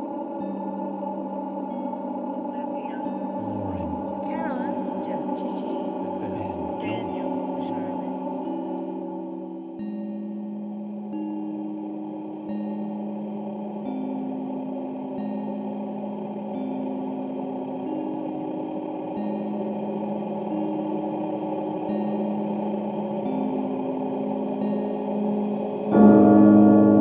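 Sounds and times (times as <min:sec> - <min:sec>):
dense steady drone: 0:00.0 - 0:27.0.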